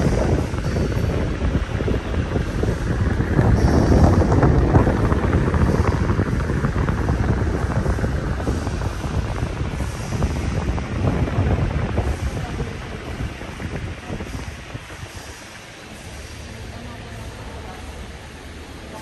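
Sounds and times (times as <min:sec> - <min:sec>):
wind buffeting microphone: 0:00.0 - 0:16.6.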